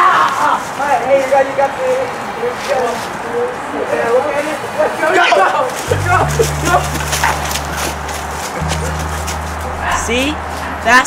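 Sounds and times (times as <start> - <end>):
music with low bass line: 5.9 - 11.0.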